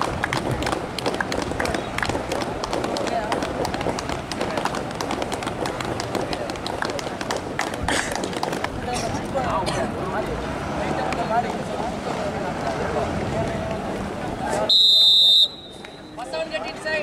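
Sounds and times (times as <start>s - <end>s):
indistinct chatter of voices: 0.0s - 14.8s.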